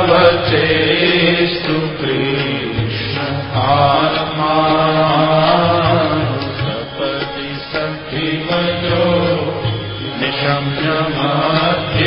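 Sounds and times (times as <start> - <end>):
man chanting a hymn: 0.0 - 12.0
musical accompaniment: 0.0 - 12.0.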